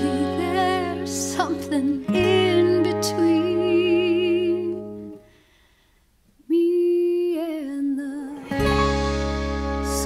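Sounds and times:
solo singer with vibrato: 0.0 - 5.2, 6.4 - 8.6
band chord: 8.5 - 10.0.

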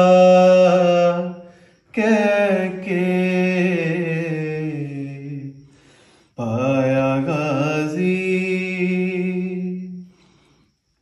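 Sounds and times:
man singing unaccompanied: 0.0 - 5.7, 6.3 - 10.1.

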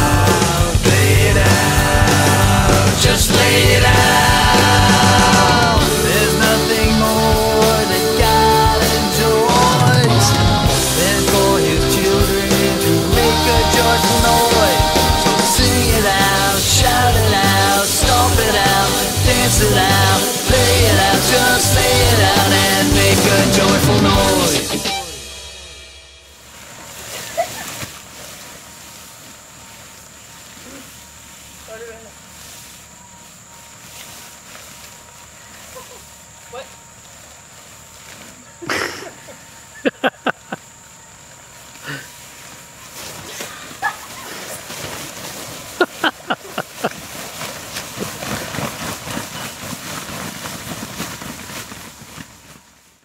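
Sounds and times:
people's voices: 0.0 - 25.3.

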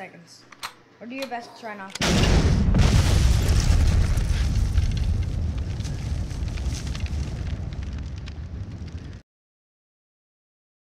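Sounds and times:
deep rumble of explosion: 2.0 - 9.2
fire crackles: 2.0 - 9.2.

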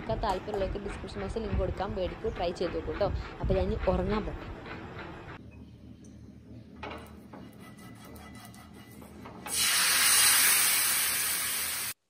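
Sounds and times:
loud steady sizzle: 9.5 - 12.0.

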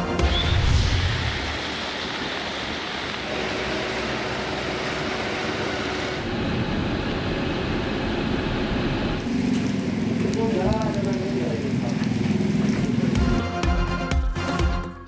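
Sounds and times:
heavy rain falling: 0.0 - 14.7
low rumble: 0.2 - 3.2.

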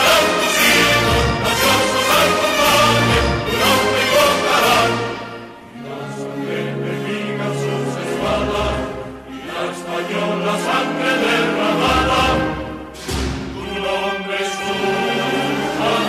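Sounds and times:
choir singing long held notes: 0.0 - 16.0.

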